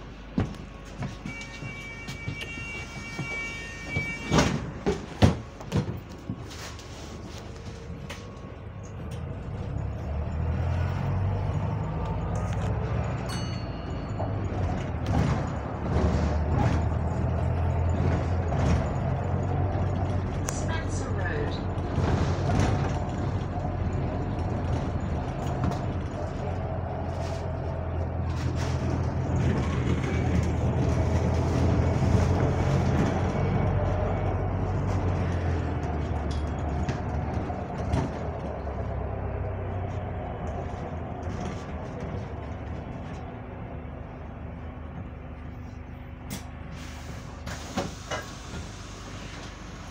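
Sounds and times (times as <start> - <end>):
bus engine drone: 0.0 - 49.9
bodywork knocking and rattling: 0.3 - 6.5, 12.1 - 20.5, 21.6 - 26.9, 27.6 - 43.5.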